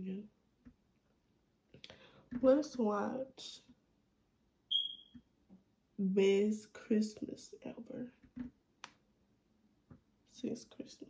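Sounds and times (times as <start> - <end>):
short high-pitched beep: 4.7 - 5.2.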